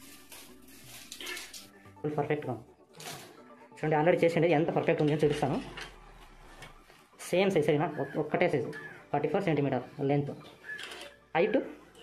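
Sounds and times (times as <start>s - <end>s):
metal wire rustling and scraping on tarp: 0.0s - 1.8s, 3.0s - 3.4s.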